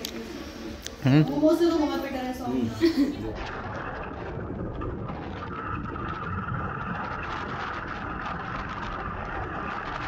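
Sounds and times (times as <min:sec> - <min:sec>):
wind noise on microphone: 0:03.2 - 0:10.0.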